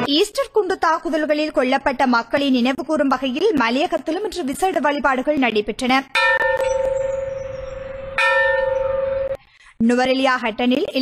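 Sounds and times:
church bell ringing: 6.2 - 9.4.

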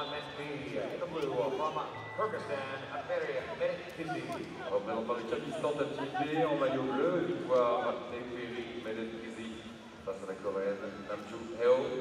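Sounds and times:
voices talking: 0.0 - 8.8.

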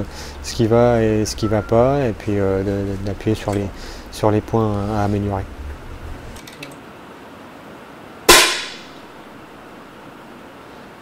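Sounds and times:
air rifle shot: 8.3 - 9.0.

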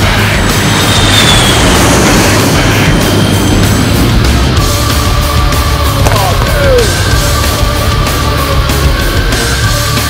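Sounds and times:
background music: 0.0 - 10.0
jet engine rushing with whine: 0.0 - 10.0.

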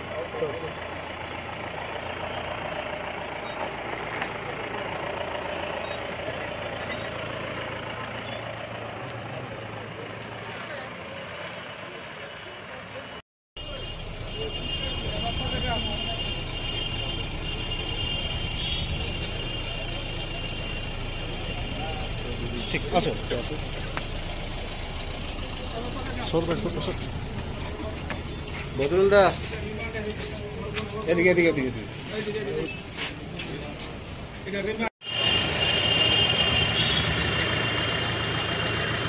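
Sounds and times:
vehicle driving off: 0.0 - 32.6, 35.0 - 39.0
car engine and road noise: 0.0 - 39.0.

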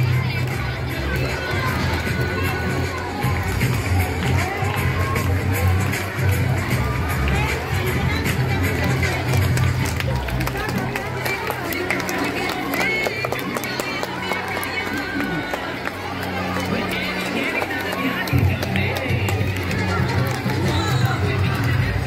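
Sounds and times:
crowd noise: 0.0 - 22.0
dance song with singing: 0.0 - 22.0.

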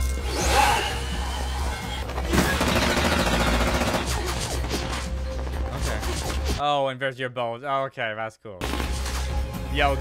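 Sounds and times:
dramatic background score: 0.0 - 6.6
cartoon automatic gunfire: 2.3 - 4.2.

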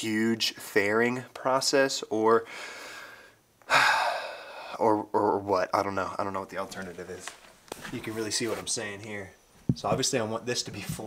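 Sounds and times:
man speaking: 0.0 - 2.5, 4.7 - 11.0
man's loud sudden breath: 2.5 - 4.7.

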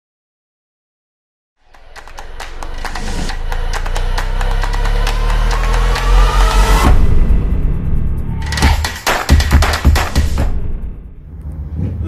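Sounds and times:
rising tone: 1.8 - 8.5.

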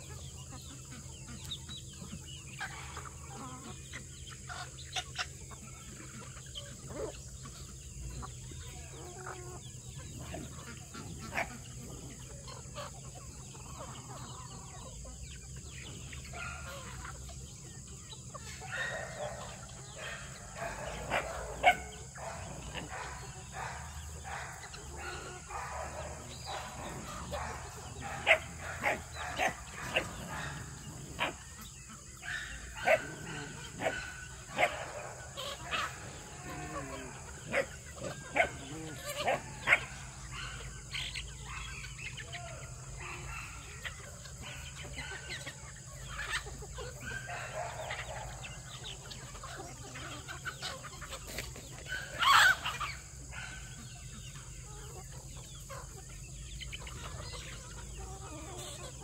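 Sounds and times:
chickens clucking: 0.0 - 59.0.

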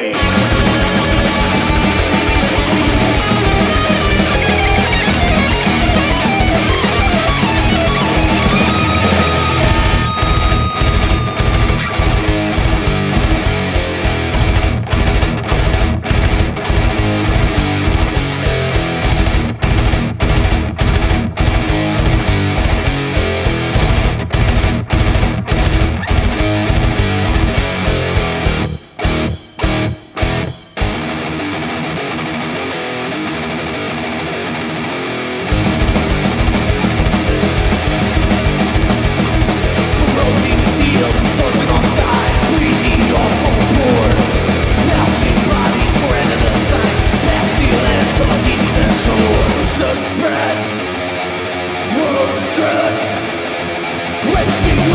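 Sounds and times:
gliding lead guitar note: 0.0 - 15.2, 26.0 - 54.9
death metal band playing: 0.0 - 54.9.

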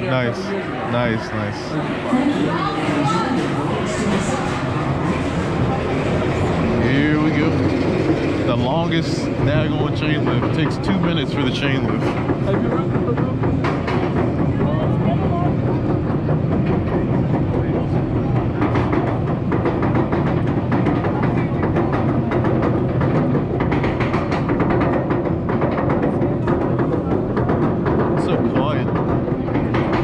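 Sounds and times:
roller coaster chain lift rattling: 2.8 - 30.0.

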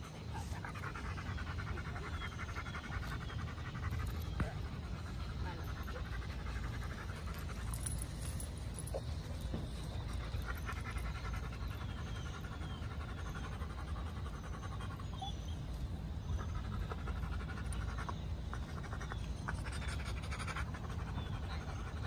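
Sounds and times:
dog panting: 0.0 - 22.0
steady low rumble: 0.0 - 22.0.

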